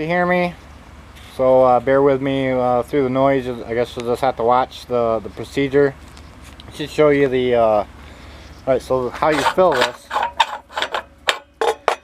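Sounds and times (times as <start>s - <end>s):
sharp metal clicks and knocks: 9.2s - 12.0s.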